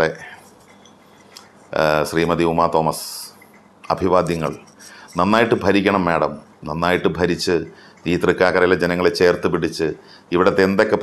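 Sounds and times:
man speaking: 0:00.0 - 0:00.5, 0:01.7 - 0:11.0.

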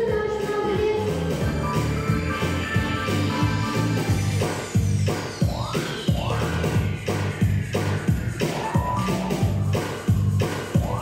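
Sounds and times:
bass line: 0:00.0 - 0:11.0
electronic pop beat: 0:00.0 - 0:11.0.

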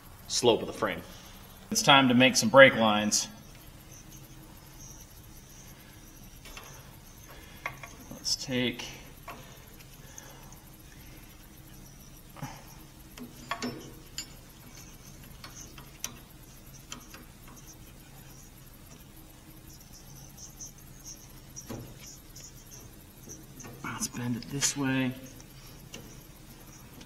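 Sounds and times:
steady low hum: 0:00.0 - 0:27.0
faint high chirping: 0:00.8 - 0:27.0
light metallic clicks and taps: 0:13.1 - 0:17.8.

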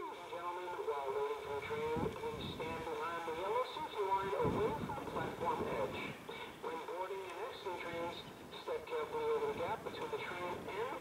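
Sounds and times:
loudspeaker announcement voice: 0:00.0 - 0:11.0.

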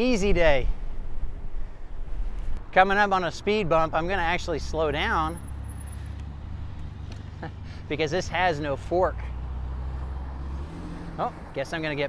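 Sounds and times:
van passing with engine rumble: 0:02.6 - 0:12.0.

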